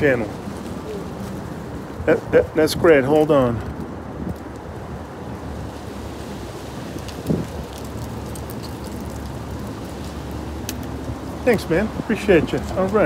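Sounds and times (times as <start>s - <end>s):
wind noise on microphone: 0.0s - 12.8s
low street ambience: 0.0s - 13.0s.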